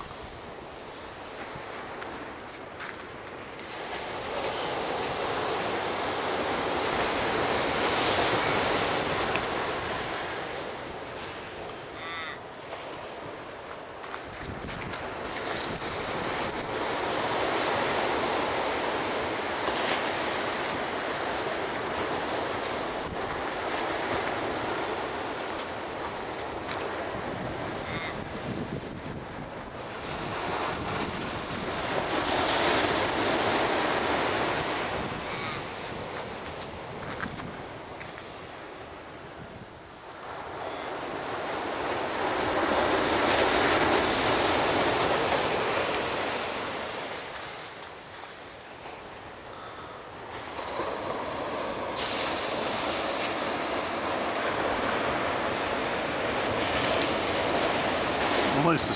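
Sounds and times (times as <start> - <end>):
surf breaking on beach: 0.0 - 39.0, 40.1 - 58.9.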